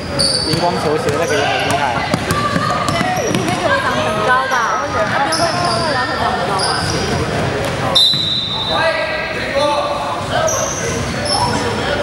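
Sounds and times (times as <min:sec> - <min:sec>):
sneaker squeaks: 0:00.0 - 0:08.9, 0:09.6 - 0:11.9
voices echoing: 0:00.0 - 0:12.0
ball bouncing on wooden floor: 0:00.5 - 0:03.7.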